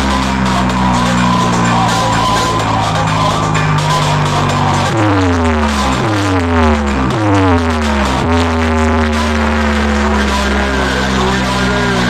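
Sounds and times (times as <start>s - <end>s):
falling pitch sweeps: 0.0s - 12.0s
heavy bass: 0.0s - 12.0s
loud electronic dance music: 0.0s - 12.0s.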